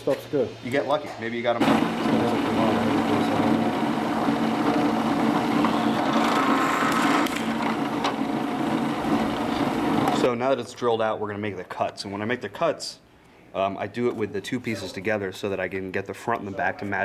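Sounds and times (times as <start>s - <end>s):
drill bit cutting plastic: 1.6s - 10.2s
drill press motor hum: 1.6s - 10.3s.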